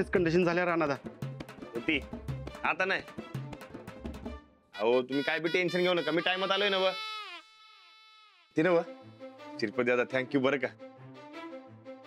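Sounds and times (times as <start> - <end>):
man speaking: 4.8 - 7.0, 8.6 - 9.0.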